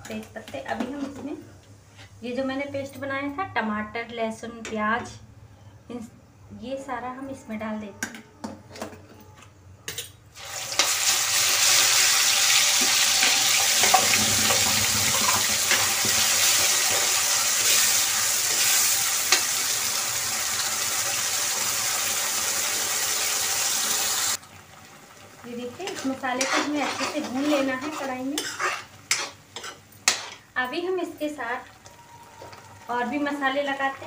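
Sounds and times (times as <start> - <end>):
vegetable paste sizzling in oil: 10.4 - 30.5
steel spoon stirring: 25.9 - 30.4.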